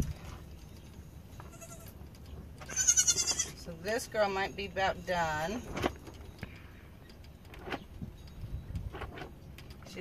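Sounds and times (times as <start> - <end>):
goat kid bleating: 1.4 - 2.0, 2.6 - 3.6.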